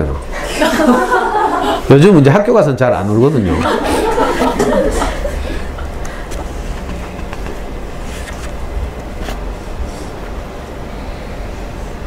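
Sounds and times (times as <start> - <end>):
laughter: 0.4 - 1.9, 3.4 - 5.4.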